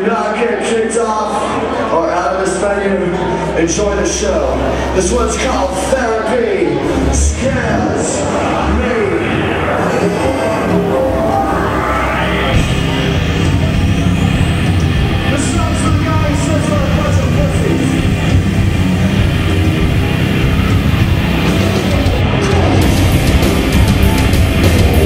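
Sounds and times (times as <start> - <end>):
gothic metal band playing live: 4.1 - 25.0
rising sweep: 6.8 - 25.0.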